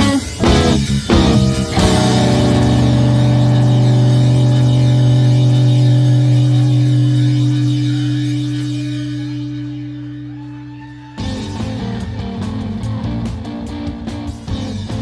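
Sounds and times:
band chord ringing: 0:00.0 - 0:10.7.

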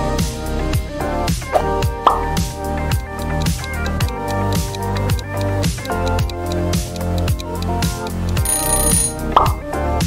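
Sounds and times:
background music with beat: 0:00.0 - 0:10.0
high ringing tone: 0:08.4 - 0:09.2.

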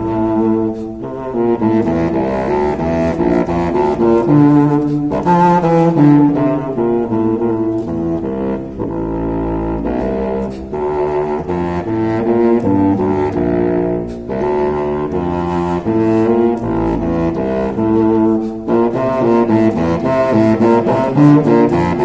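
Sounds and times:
contrabassoon playing low notes: 0:00.0 - 0:22.0.

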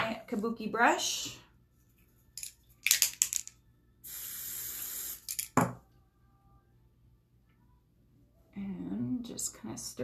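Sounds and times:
spray can hissing: 0:04.0 - 0:05.6.

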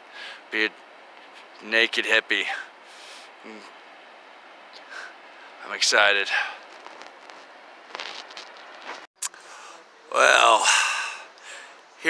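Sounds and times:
faint outdoor hiss: 0:00.0 - 0:12.0
soft clicks and crackles: 0:06.6 - 0:09.1.

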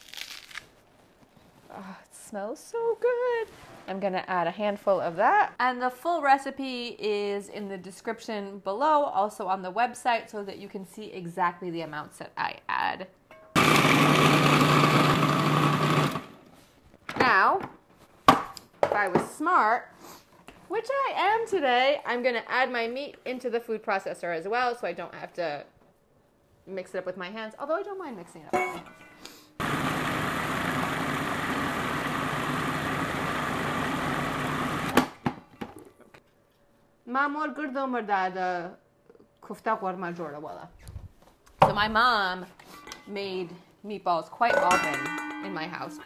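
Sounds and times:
food processor running: 0:13.6 - 0:16.4, 0:29.6 - 0:35.1.

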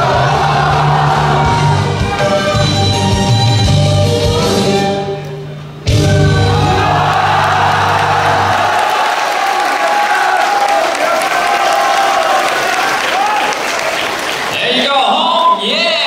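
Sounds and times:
audience applauding and cheering: 0:00.0 - 0:02.6, 0:06.4 - 0:14.8.

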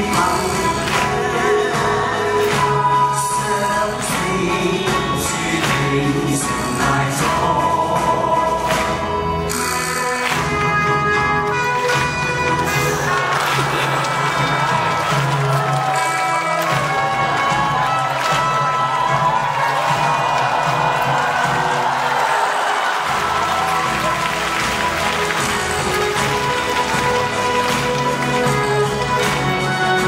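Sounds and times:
live orchestral music: 0:00.0 - 0:30.0
piano playing: 0:00.0 - 0:30.0
audience applause: 0:10.0 - 0:30.0.

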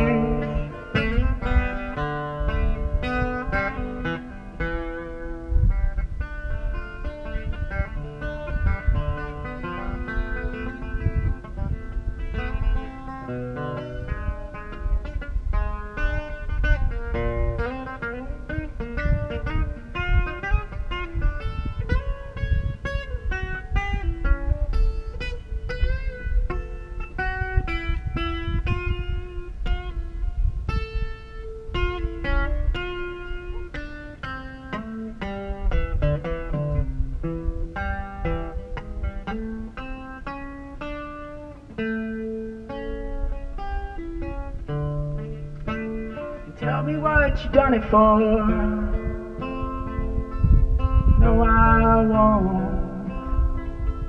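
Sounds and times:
amplified acoustic guitar playing: 0:00.0 - 0:54.0.

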